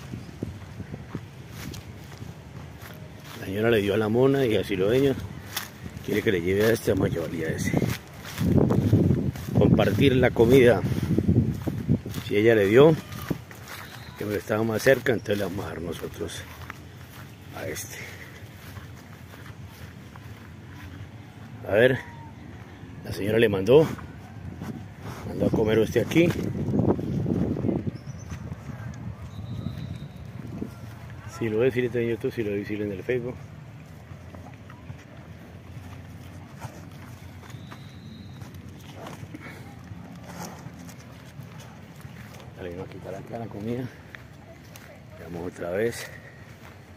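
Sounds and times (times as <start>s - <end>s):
footsteps on grass and dirt: 0.0s - 46.9s
hooves shifting: 0.0s - 46.9s
cattle crunching corn husks: 33.5s - 45.1s.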